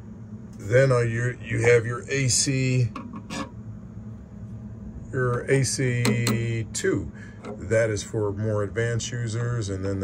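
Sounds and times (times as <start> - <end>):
low steady room hum: 0.0 - 10.0.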